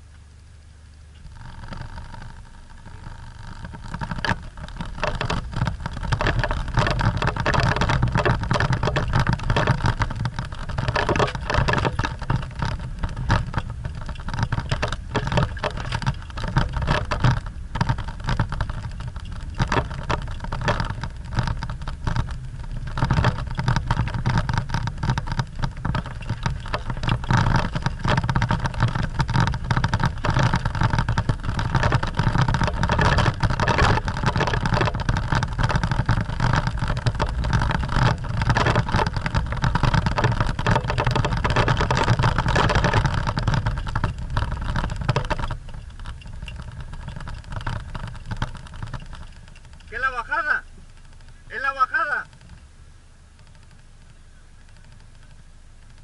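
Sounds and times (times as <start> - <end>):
engine running under load: 0.0 - 56.0
knocks and rattles: 1.2 - 52.7.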